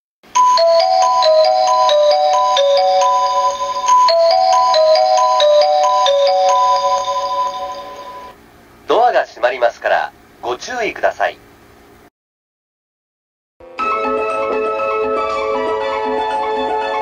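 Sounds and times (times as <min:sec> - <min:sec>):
electronic station chime tune: 0:00.3 - 0:08.4.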